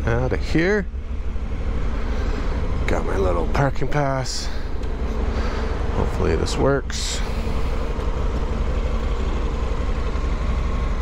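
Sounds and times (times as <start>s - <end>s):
motorcycle engine idling: 7.0s - 11.0s.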